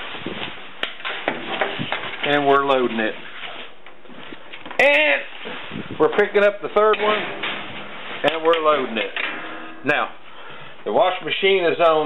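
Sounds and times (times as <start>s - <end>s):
shower curtain crinkling: 0.0s - 9.2s.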